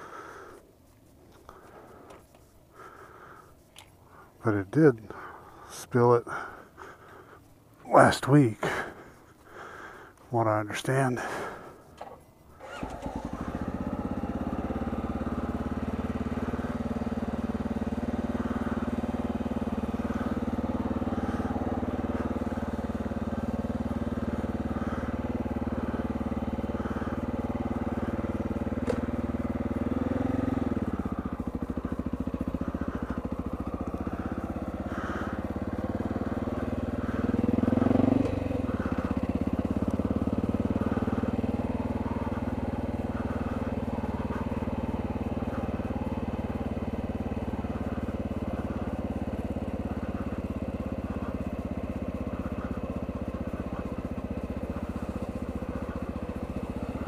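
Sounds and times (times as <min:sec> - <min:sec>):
motorcycle engine at low revs: 0:00.0 - 0:57.0.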